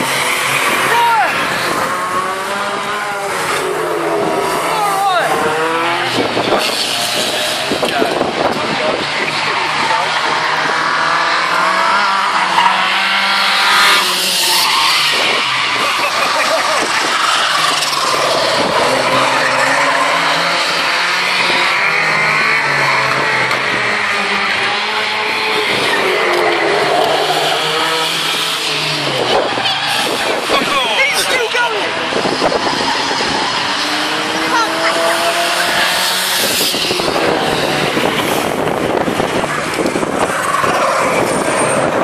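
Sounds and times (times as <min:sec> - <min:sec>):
race car engines revving: 0:00.0 - 0:42.0
tyres skidding and squealing: 0:00.0 - 0:42.0.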